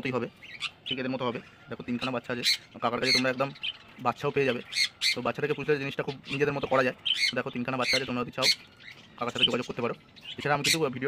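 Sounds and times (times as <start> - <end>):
man talking: 0.0 - 8.6, 9.2 - 11.0
budgerigars squawking and chirping: 0.0 - 11.0.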